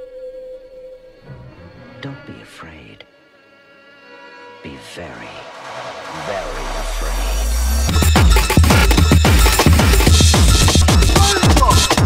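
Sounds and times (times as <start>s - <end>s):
noise electronic music: 5.0s - 12.0s.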